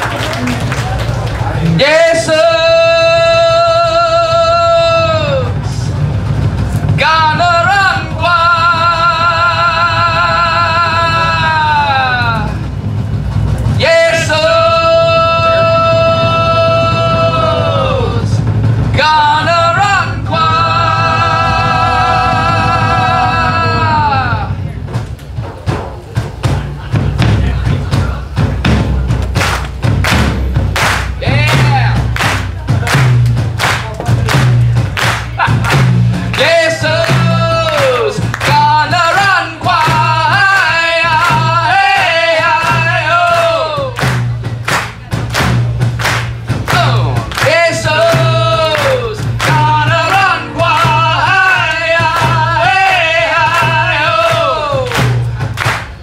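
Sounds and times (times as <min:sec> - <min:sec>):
live band playing: 0:00.0 - 0:56.0
man singing: 0:01.6 - 0:06.0, 0:06.9 - 0:12.6, 0:13.8 - 0:18.4, 0:19.0 - 0:24.6, 0:31.2 - 0:32.2, 0:35.4 - 0:44.2, 0:46.7 - 0:55.4
fast drum hits: 0:01.6 - 0:56.0.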